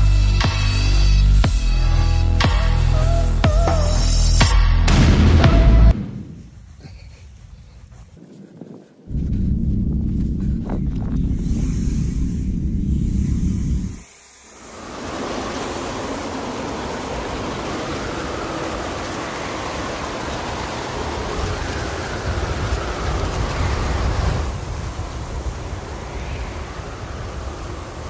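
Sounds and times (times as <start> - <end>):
loud low rumble: 9.1 - 14.0
leaf blower running: 14.6 - 24.7.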